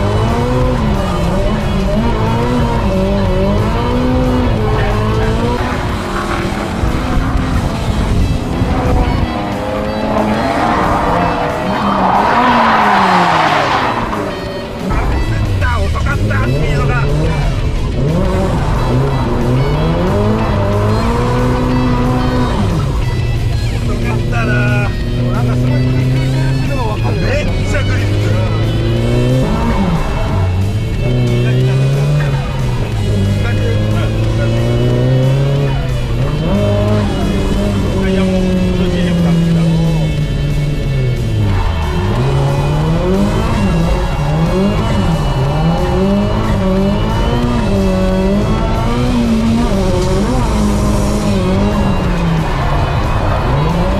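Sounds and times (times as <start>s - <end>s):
car engine revving hard: 0.0s - 53.9s
tyres squealing and skidding: 0.0s - 53.9s.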